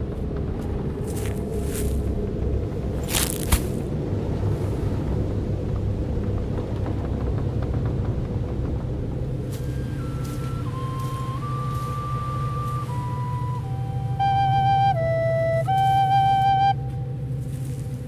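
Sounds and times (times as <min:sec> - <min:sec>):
low rumbling drone: 0:00.0 - 0:18.0
wooden flute melody: 0:09.4 - 0:18.0.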